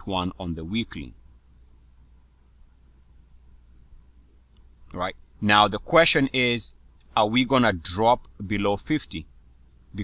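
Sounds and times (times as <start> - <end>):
low room tone hum: 0.0 - 10.0
computer mouse click: 1.7 - 1.9, 3.2 - 3.5, 4.4 - 5.0.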